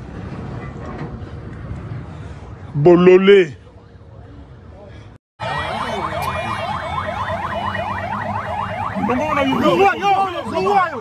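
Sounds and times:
electronic siren yelping: 5.4s - 11.0s.

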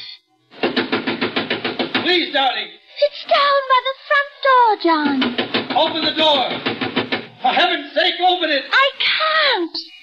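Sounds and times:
rapid pounding on a door: 0.6s - 2.4s, 5.1s - 7.4s.

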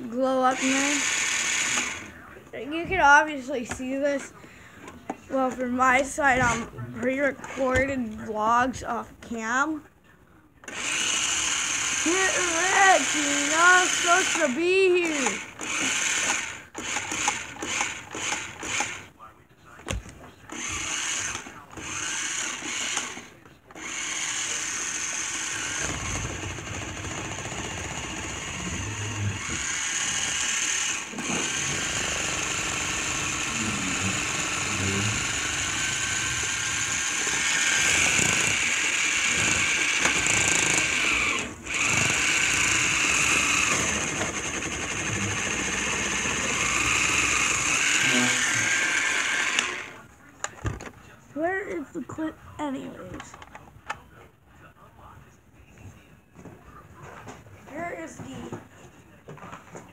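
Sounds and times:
small motor whirring: 0.5s - 2.2s, 10.6s - 19.1s, 20.5s - 50.0s.

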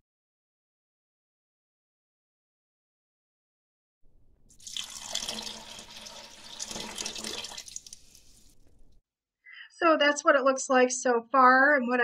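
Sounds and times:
water pouring: 4.4s - 9.0s.

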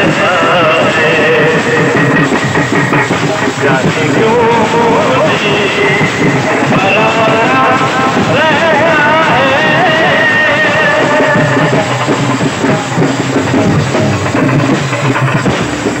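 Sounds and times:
drums keeping a steady beat: 0.0s - 16.0s.

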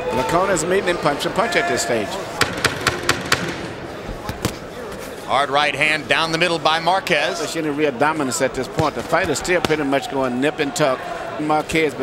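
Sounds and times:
arena crowd murmur: 0.0s - 12.0s.

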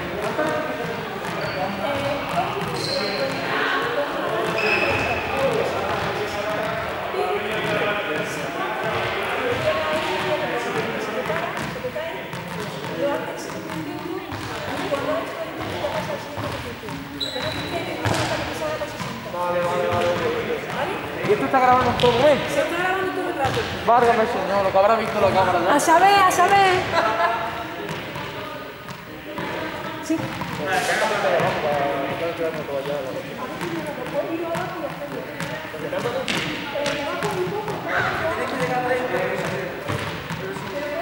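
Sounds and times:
people chatting in echoing hall: 0.0s - 41.0s.

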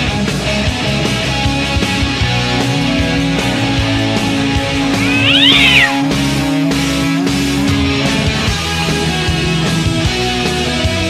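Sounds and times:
cat meowing: 4.9s - 6.1s.

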